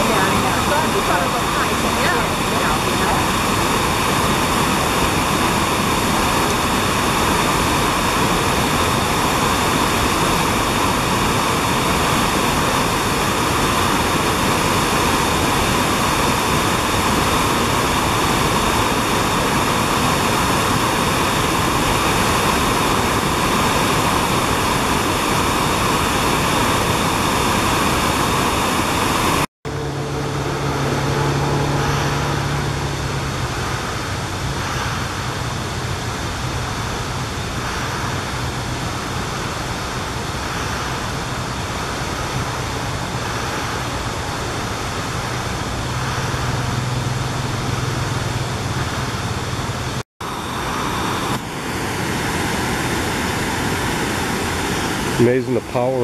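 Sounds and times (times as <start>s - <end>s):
river rapids rushing over rocks: 0.0s - 29.5s, 30.3s - 56.0s
low hum: 0.0s - 56.0s
water flowing quietly: 0.0s - 56.0s.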